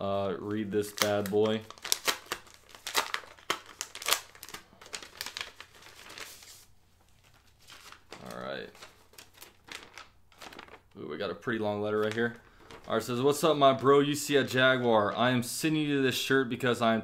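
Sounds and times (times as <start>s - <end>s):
paper crinkling and rustling: 0.8s - 11.0s, 11.7s - 13.5s.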